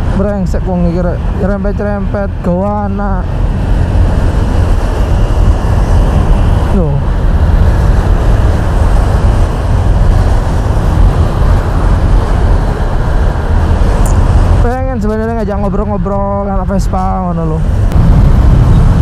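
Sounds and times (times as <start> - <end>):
wind and road rumble: 0.0 - 19.0
motorcycle engine running: 17.8 - 19.0.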